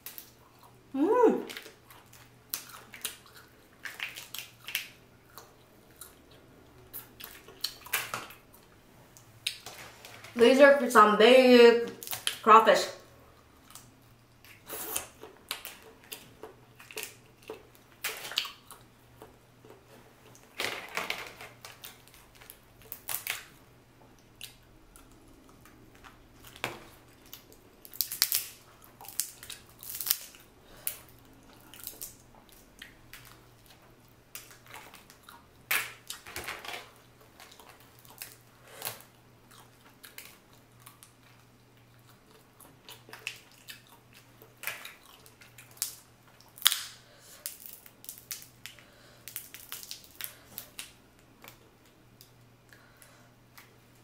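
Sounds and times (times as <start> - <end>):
crawfish shells cracking: 13.6 - 23.6, 24.3 - 41.5, 42.9 - 52.4.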